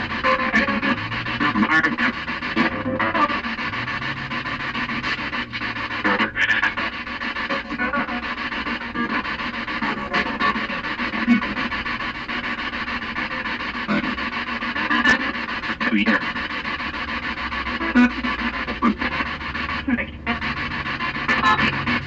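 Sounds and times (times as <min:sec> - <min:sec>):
chopped radio fragments: 0:00.0 - 0:22.0
radio static: 0:00.0 - 0:22.0.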